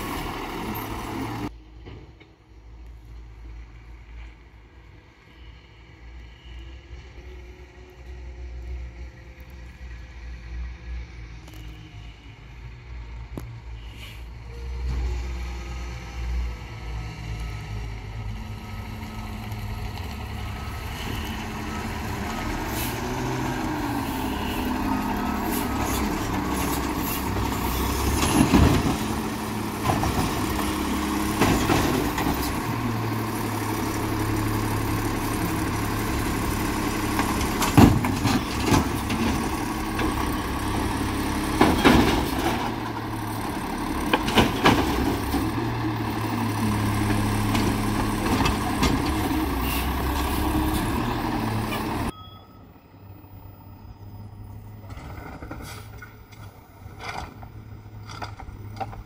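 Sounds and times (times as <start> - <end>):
garbage truck engine revving: 18.1 - 52.1.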